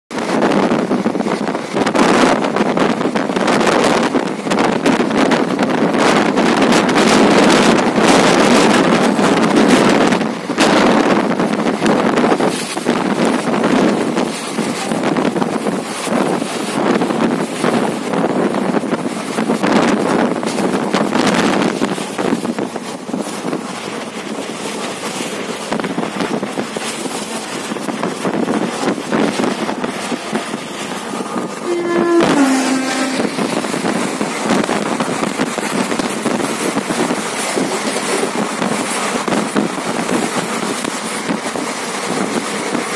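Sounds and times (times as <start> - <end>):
train running noise: 0.1 - 42.9
wind buffeting microphone: 0.1 - 42.9.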